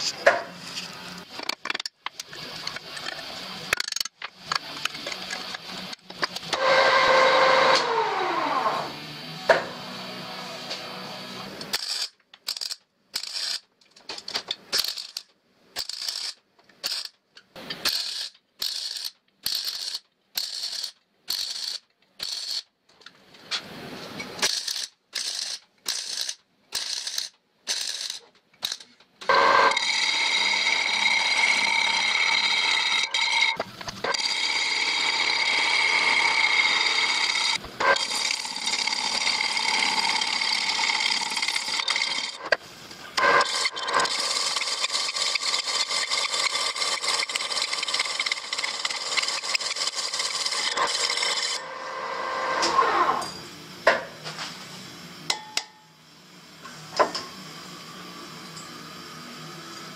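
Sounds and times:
power tool grinding steel: 4.7s - 12.1s, 29.3s - 53.3s.

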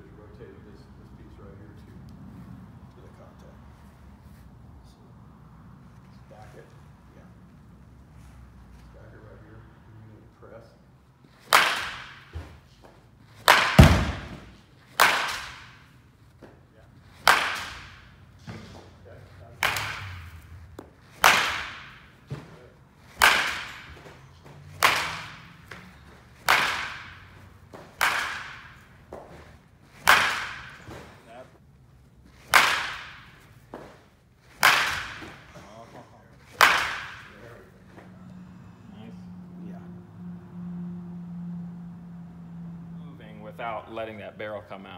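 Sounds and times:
baseball bat hitting balls: 11.2s - 38.9s.

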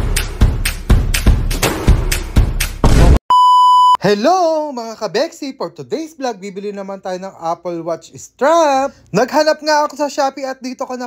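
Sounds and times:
electronic music with heavy beat: 0.0s - 3.2s
steady electronic beep: 3.3s - 4.0s.

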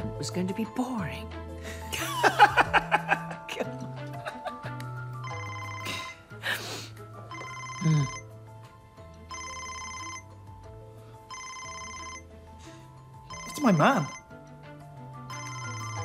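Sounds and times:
soft background music: 0.0s - 16.0s
mobile phone ringing: 5.0s - 6.4s, 7.1s - 16.0s.

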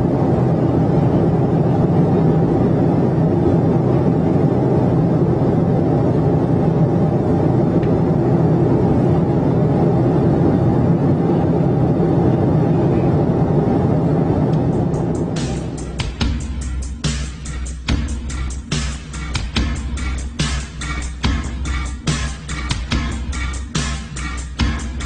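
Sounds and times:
rush of air in cockpit: 0.0s - 17.4s
low drone: 0.0s - 25.0s.

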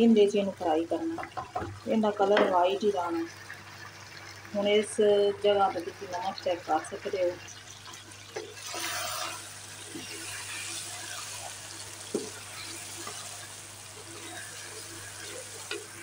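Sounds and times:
curry sizzling in a wok: 0.0s - 16.0s.

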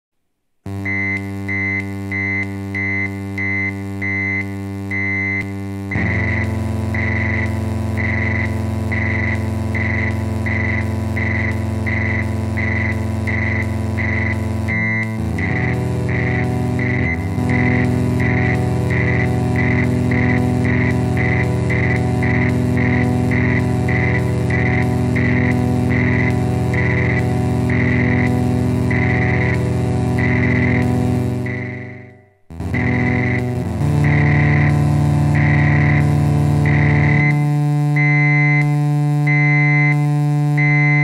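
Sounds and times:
synthesizer droning chords: 0.7s - 41.0s.

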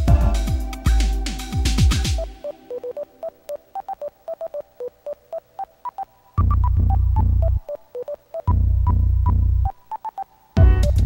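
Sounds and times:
staccato synth melody: 0.0s - 9.8s
deep bass line: 6.4s - 7.6s, 8.5s - 9.7s.

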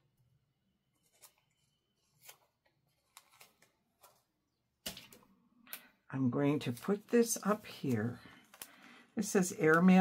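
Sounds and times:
paper tape clicking and crackling: 1.0s - 5.9s, 6.6s - 8.8s.

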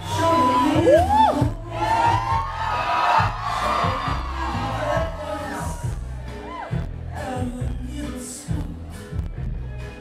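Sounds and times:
loud backing music: 0.0s - 10.0s
audience cheering and whooping: 0.1s - 7.1s.

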